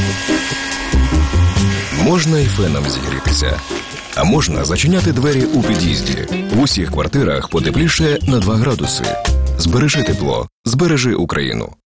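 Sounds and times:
hairdryer whine: 0.0 - 5.8
background music with low beat: 0.0 - 10.2.

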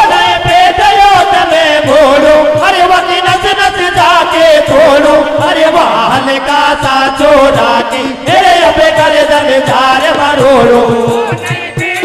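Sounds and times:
instrumental accompaniment: 0.0 - 12.0
men singing devotional chant: 0.0 - 12.0.

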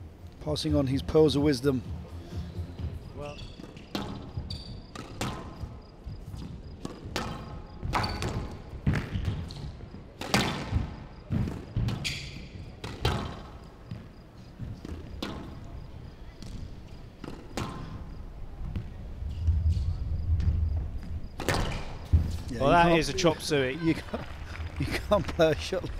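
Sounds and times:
shoes squeaking on wooden floor: 2.8 - 10.0, 10.7 - 23.3
squash ball hitting rackets and walls: 3.6 - 18.9, 21.3 - 22.6.

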